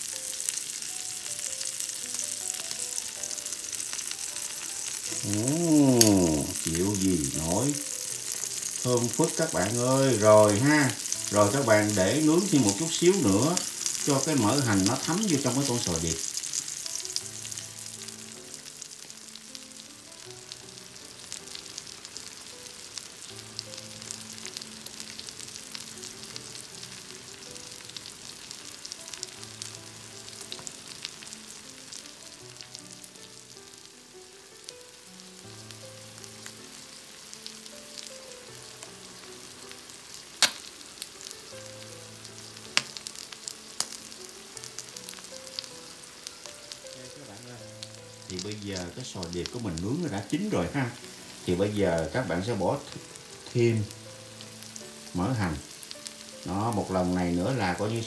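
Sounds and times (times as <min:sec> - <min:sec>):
scallops sizzling on a grill: 0:00.0 - 0:58.0
oil popping: 0:40.4 - 0:40.8.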